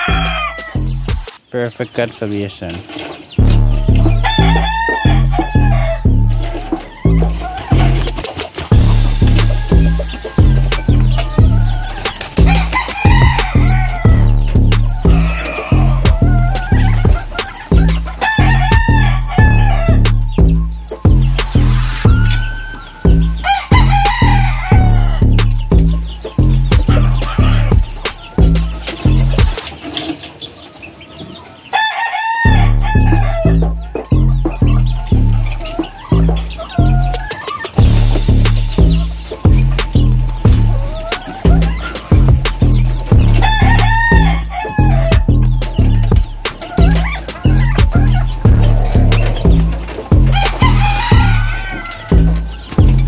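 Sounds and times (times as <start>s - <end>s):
rooster crowing: 0.0s - 0.9s, 3.7s - 8.1s, 8.8s - 20.4s, 22.1s - 29.6s, 31.7s - 34.3s, 35.0s - 38.0s, 40.0s - 53.0s
music with heavy steady beat: 0.0s - 1.4s, 3.4s - 29.7s, 32.5s - 53.0s.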